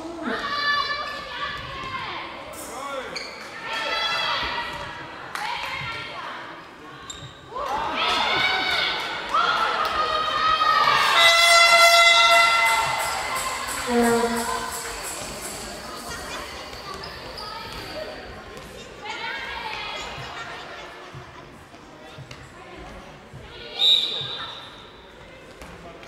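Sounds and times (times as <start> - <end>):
high-pitched shouts: 10.6 - 15.6
steady horn-like tone: 11.1 - 16.0.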